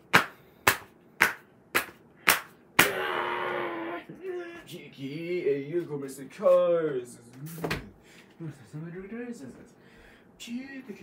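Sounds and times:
drawn-out vocal sound: 2.8s - 4.1s.

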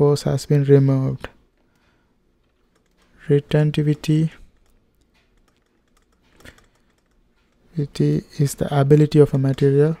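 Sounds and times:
stylus tapping on tablet: 4.5s - 7.8s.

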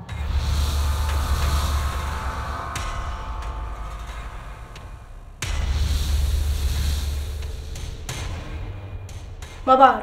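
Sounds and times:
dramatic background score: 0.0s - 10.0s.

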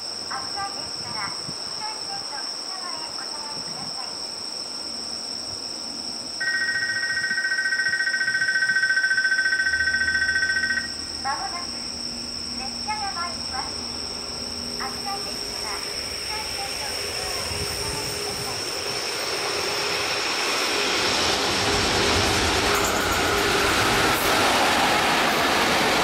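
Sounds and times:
crickets chirping: 0.0s - 26.0s
two-tone electronic signal tone: 6.4s - 11.0s
freight train rumble: 10.7s - 26.0s.

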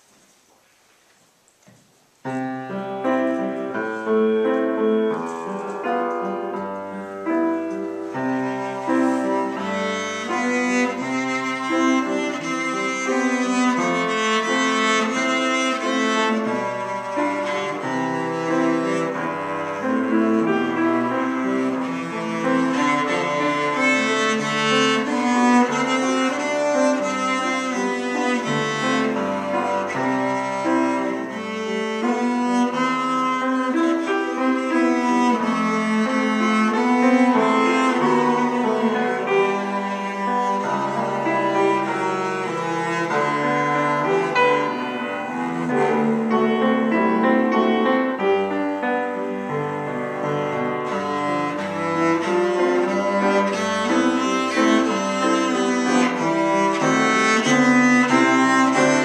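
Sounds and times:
piano accompaniment: 2.1s - 59.0s
cello melody: 2.2s - 59.0s.

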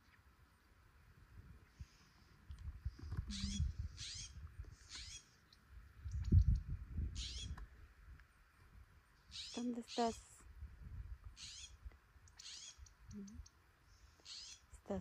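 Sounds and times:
songbird singing: 1.5s - 15.0s.

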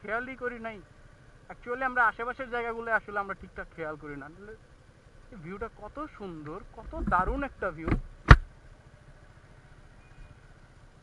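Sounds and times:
motorcycle engine running quietly: 0.0s - 11.0s
steady road noise: 0.0s - 11.0s
sharp knock: 7.8s - 8.5s.

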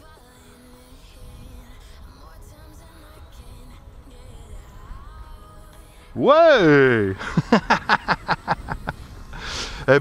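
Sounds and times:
man speaking: 6.2s - 7.2s
man laughing: 6.3s - 10.0s
breath: 9.3s - 9.9s.

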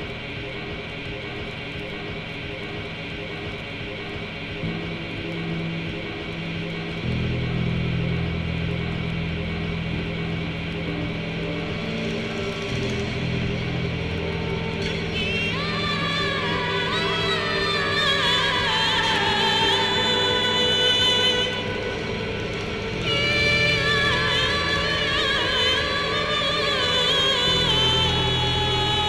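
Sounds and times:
low bass part: 0.0s - 16.6s
sustained held notes: 0.0s - 29.0s.

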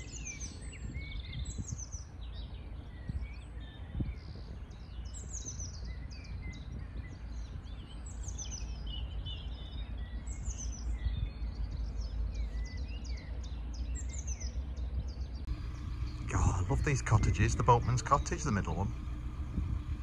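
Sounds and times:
songbirds singing: 0.0s - 20.0s
steady low rumble: 0.0s - 20.0s.

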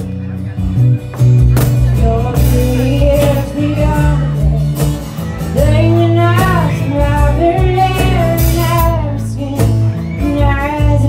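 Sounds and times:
electric bass: 0.0s - 11.0s
strummed acoustic guitar: 0.0s - 11.0s.

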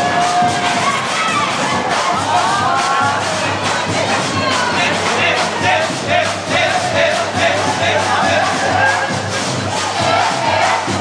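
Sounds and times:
percussion band drumming: 0.0s - 11.0s
voices: 0.0s - 11.0s.

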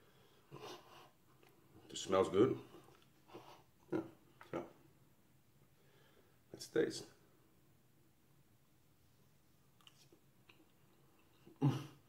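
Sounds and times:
man chewing with grunts: 9.8s - 12.0s.

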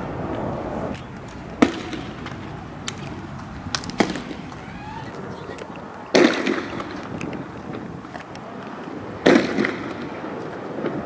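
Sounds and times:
loud bangs with echo: 1.6s - 3.1s, 3.7s - 4.8s, 6.1s - 7.2s, 9.2s - 11.0s.

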